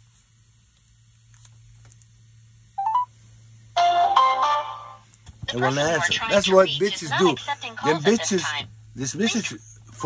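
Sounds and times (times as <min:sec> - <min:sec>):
faint steady hum: 0:00.0 - 0:10.0
electronic phone jingle: 0:02.8 - 0:03.1.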